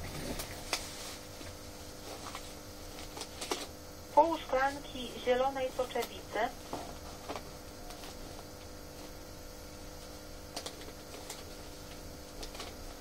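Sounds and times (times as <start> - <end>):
broadcast hum and hiss: 0.0 - 13.0.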